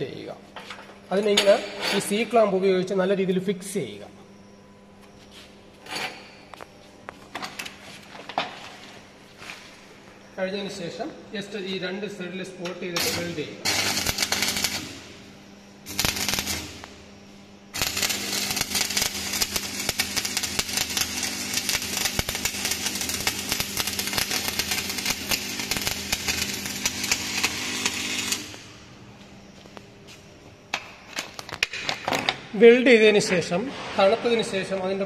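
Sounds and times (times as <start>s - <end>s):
welding arc crackling and sizzling: 6.2s - 32.0s.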